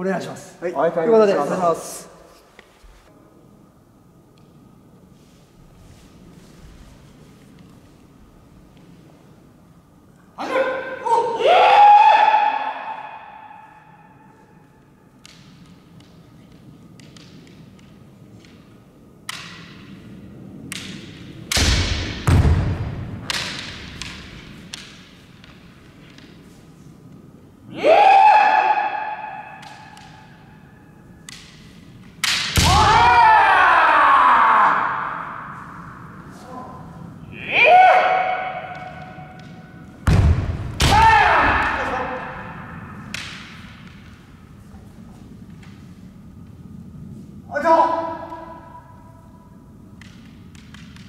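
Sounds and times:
loud shouts: 0:10.4 - 0:13.8, 0:27.7 - 0:30.0, 0:32.6 - 0:35.7, 0:36.4 - 0:39.2, 0:40.8 - 0:42.8
bamboo swords clacking: 0:14.8 - 0:22.2, 0:22.8 - 0:27.2, 0:29.0 - 0:33.2, 0:49.9 - 0:51.0.

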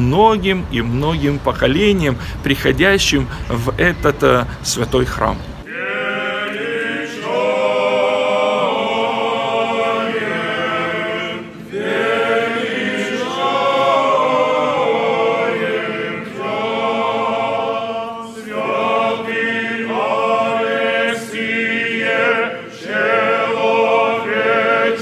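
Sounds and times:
choir singing a cappella chant: 0:05.6 - 0:25.0.

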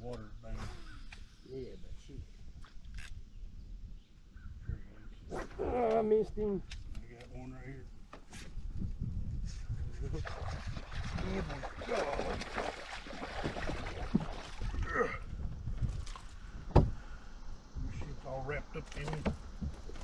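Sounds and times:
fish splashing in water: 0:10.2 - 0:14.8.

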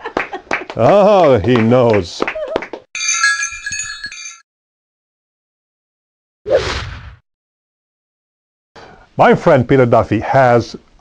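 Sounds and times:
sparkly chime: 0:03.0 - 0:04.4.

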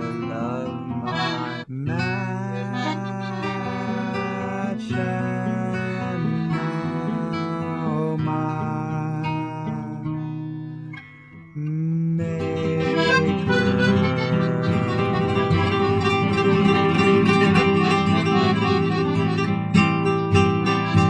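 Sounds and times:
accordion chords: 0:00.0 - 0:08.1, 0:12.4 - 0:21.0
acoustic guitar: 0:00.0 - 0:21.0.

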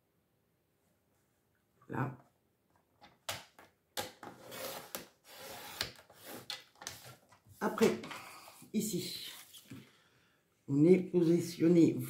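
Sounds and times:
paper trimmer scraping rail: 0:04.4 - 0:06.6.

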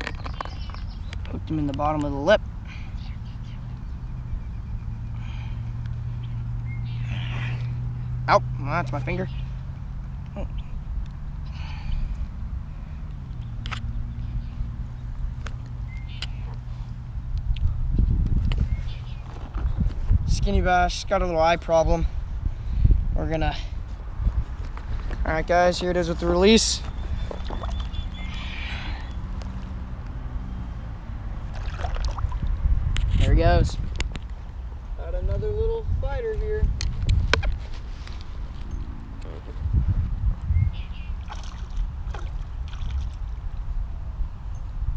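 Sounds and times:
wind on microphone: 0:10.6 - 0:29.8, 0:30.9 - 0:44.9
microphone handling rumble: 0:13.1 - 0:21.3, 0:21.9 - 0:28.4, 0:31.4 - 0:43.7.

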